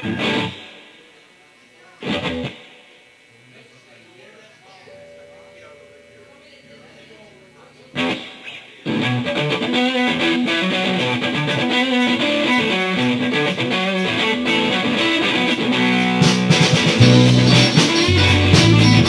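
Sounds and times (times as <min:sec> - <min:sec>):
electric guitars and drums playing: 0:00.0 - 0:01.0, 0:02.0 - 0:02.8, 0:07.9 - 0:19.0.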